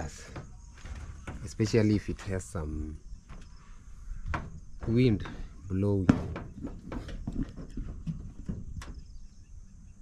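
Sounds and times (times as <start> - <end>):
footsteps on metal roofing: 0.0 - 9.6.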